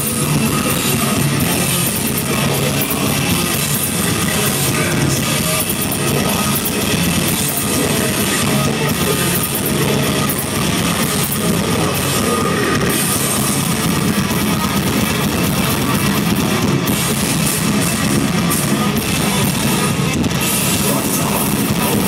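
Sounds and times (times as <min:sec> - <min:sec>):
live metal band playing: 0:00.0 - 0:22.0.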